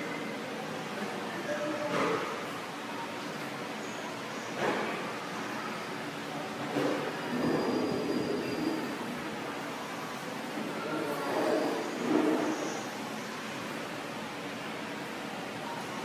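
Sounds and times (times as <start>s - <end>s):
faint indistinct voices: 0.0s - 16.0s.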